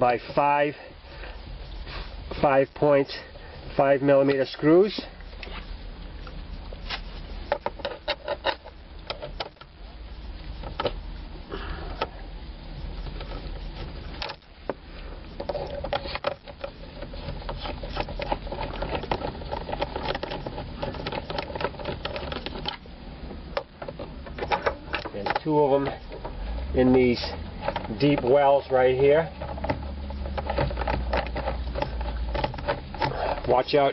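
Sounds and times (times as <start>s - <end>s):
steady low hum: 0.0s - 33.9s
tool clicking and scraping plastic: 4.2s - 9.8s, 12.8s - 22.9s, 23.5s - 33.9s.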